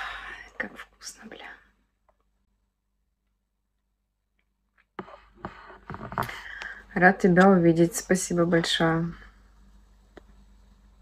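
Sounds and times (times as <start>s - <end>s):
woman whispering: 0.0s - 1.7s.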